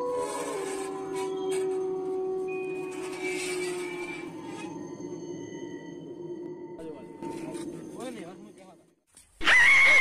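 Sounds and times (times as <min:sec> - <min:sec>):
low held tone: 0:00.0 - 0:08.1.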